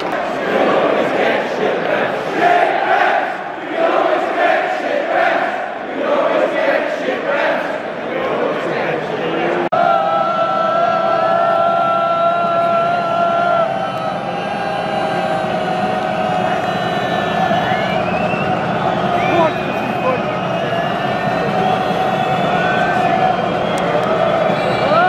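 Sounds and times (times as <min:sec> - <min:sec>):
crowd chanting: 0:00.0 - 0:25.0
whistles: 0:13.7 - 0:25.0.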